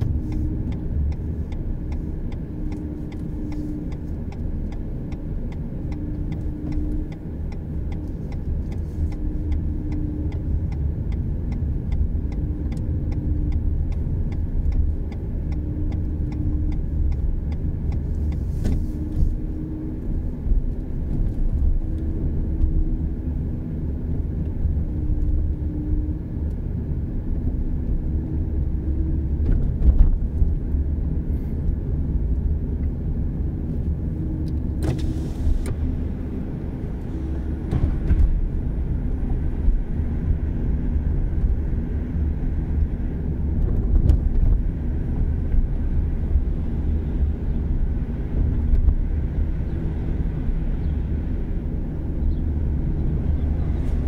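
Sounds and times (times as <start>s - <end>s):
turn signal ticking: 0.0s - 50.9s
car road and engine noise: 0.0s - 54.0s.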